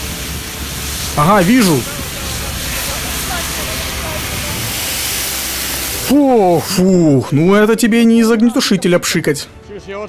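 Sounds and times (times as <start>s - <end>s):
fire extinguisher hissing: 0.0s - 7.6s.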